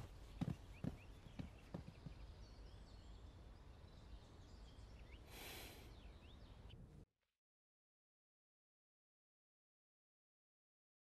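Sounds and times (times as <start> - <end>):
footsteps: 0.0 - 2.2
faint bird chirps: 0.0 - 7.0.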